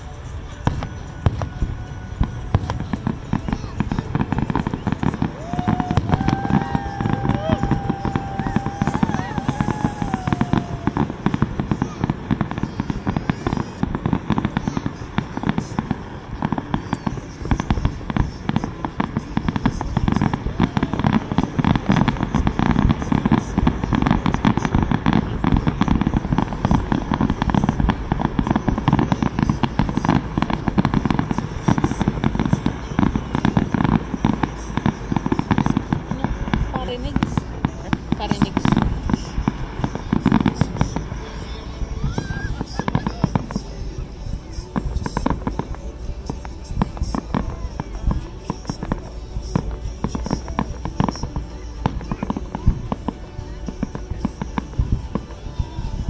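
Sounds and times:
fireworks bursting: 0.0 - 56.0.

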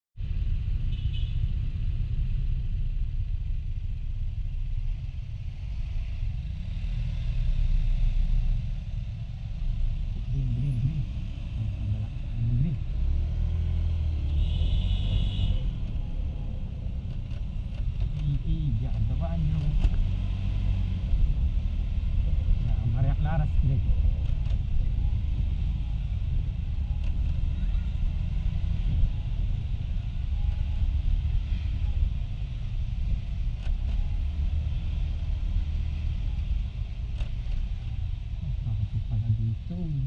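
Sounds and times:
other traffic: 0.2 - 40.0
road and wind noise: 0.2 - 40.0.

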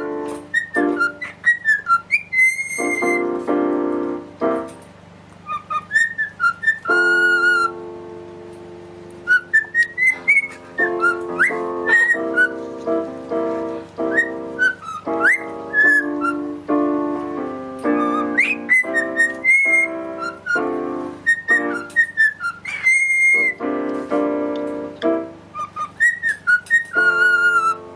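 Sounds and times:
cockatiel whistling: 0.0 - 3.4, 5.4 - 7.8, 9.2 - 12.8, 14.0 - 16.6, 17.8 - 23.6, 25.5 - 27.9
piano playing: 0.0 - 27.9.

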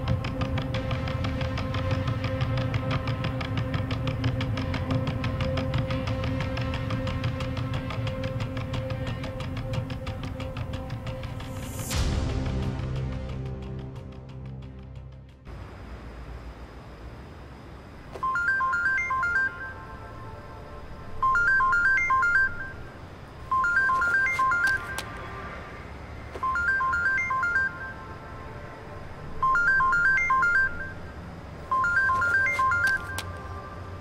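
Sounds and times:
phone ringtone beeping melody: 18.2 - 20.5, 21.2 - 22.9, 23.5 - 25.1, 26.4 - 28.5, 29.4 - 33.5.

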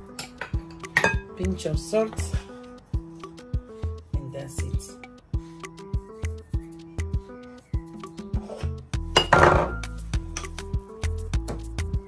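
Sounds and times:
background music with steady beat: 0.0 - 12.0
kitchen items clattering on worktop: 8.4 - 9.8.

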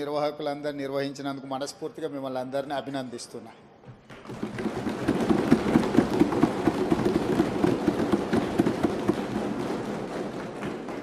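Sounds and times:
crowd applause: 4.2 - 11.0.

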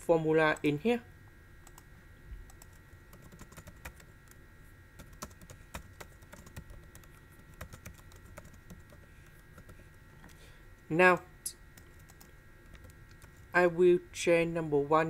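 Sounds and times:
computer keyboard typing: 2.5 - 4.4, 5.0 - 9.8, 11.8 - 13.5.

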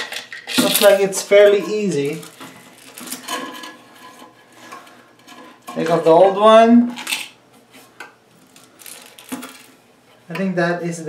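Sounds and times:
plastic parts clicking and scraping: 0.0 - 7.3, 8.4 - 9.8.

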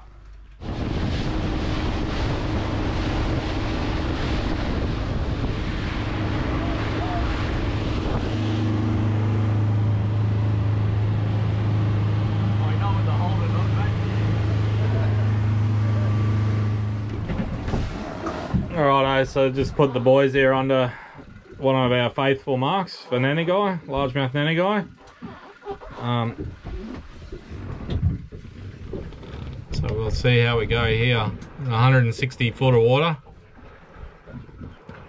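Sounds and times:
boat engine drone: 0.0 - 35.0
water noise: 0.0 - 35.0
rushing wind: 0.6 - 21.6.

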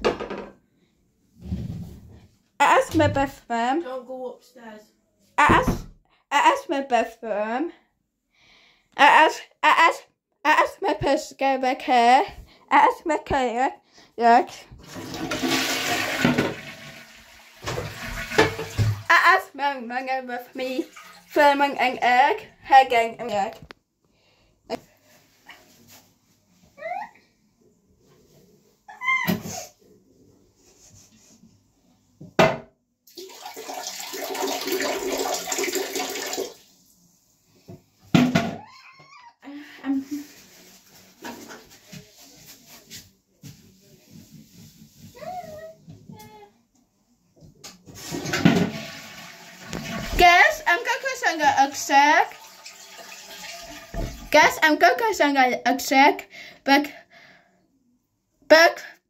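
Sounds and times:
toilet flushing: 14.8 - 19.1, 20.5 - 21.7, 33.1 - 36.9, 48.0 - 54.6
cat meowing: 38.6 - 39.4.

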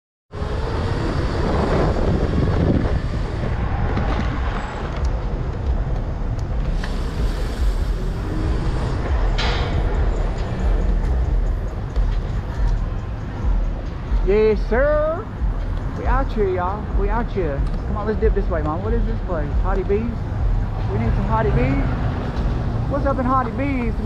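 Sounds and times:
wind buffeting microphone: 0.3 - 23.1
road rumble: 0.3 - 24.0.

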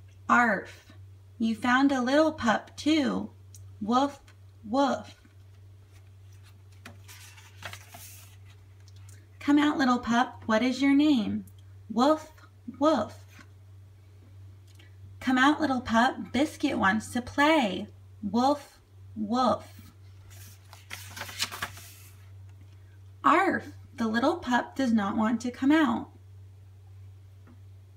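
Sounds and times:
low steady hum: 0.0 - 27.9
book page turning: 5.1 - 9.1, 20.1 - 22.3.

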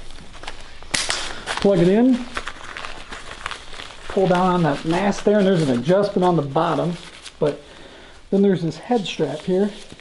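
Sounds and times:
fabric face mask rustling: 0.0 - 10.0.

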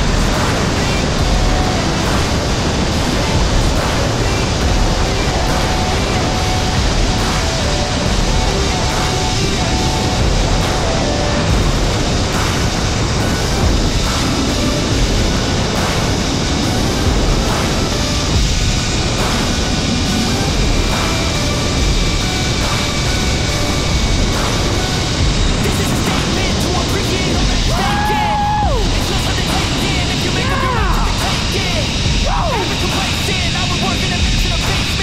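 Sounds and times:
wind roaring over microphone: 0.0 - 35.0
zip-line trolley whine: 0.0 - 35.0.

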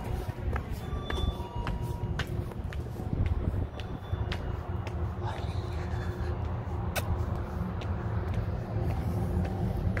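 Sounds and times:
high heels clicking on concrete: 0.0 - 10.0.

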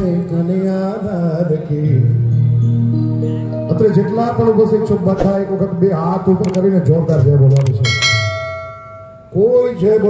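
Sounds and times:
bell-like ding notification: 7.8 - 9.4.

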